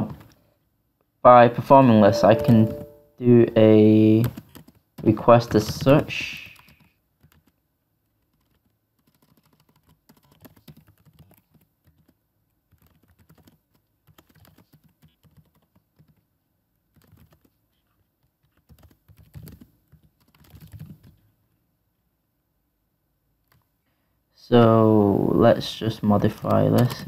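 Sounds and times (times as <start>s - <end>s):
typing on computer keyboard: 4.2s - 5.8s, 6.5s - 7.6s, 8.2s - 16.3s, 16.9s - 21.2s, 26.3s - 27.0s.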